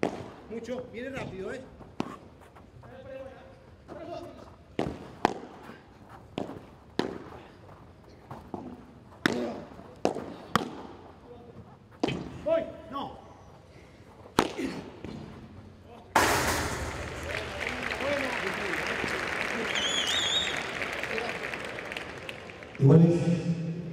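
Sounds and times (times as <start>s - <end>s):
man speaking: 22.8s - 23.7s.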